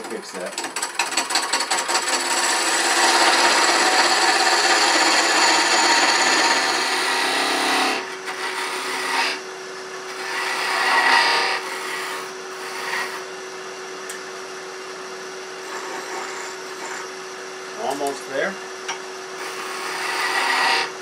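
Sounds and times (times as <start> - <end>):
lathe humming: 0.0 - 9.4, 10.1 - 13.4, 15.6 - 21.0
lathe tool cutting wood: 0.0 - 9.4, 10.1 - 13.2, 15.6 - 17.1, 19.4 - 21.0.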